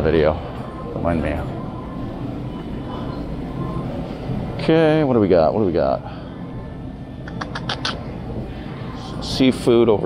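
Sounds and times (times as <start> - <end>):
supermarket room noise: 0.0 - 10.0.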